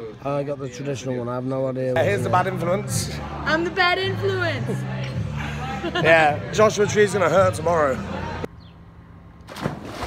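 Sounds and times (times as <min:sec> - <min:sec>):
churning water: 0:09.5 - 0:10.0
person splashing into pool: 0:09.5 - 0:10.0.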